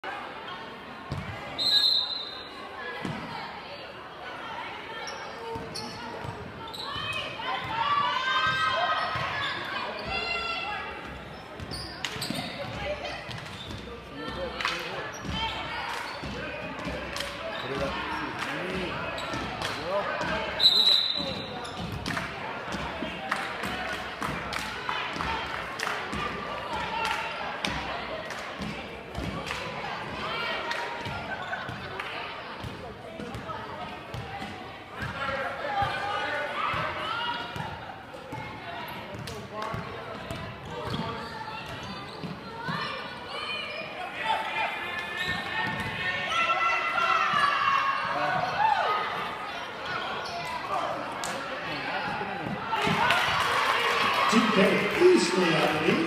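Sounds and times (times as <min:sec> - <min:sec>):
voices calling out in gym: 0:00.0 - 0:56.0
loud whistle blasts: 0:01.6 - 0:02.5, 0:20.6 - 0:21.4.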